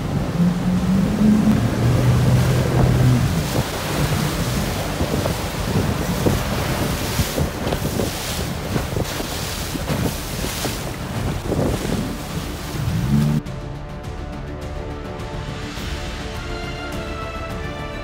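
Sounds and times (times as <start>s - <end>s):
rushing whitewater: 0.0s - 13.4s
wind noise on microphone: 0.0s - 13.4s
boat engine drone: 0.0s - 14.7s.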